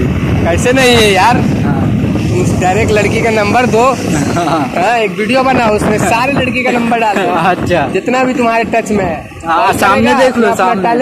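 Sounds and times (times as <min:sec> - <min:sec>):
motorcycle engine rumble: 0:00.0 - 0:10.1
wind on microphone: 0:00.0 - 0:11.0
people talking: 0:00.4 - 0:11.0.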